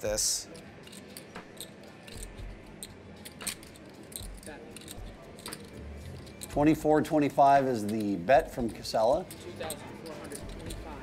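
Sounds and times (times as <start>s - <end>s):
poker chips clicking: 0.5s - 11.0s.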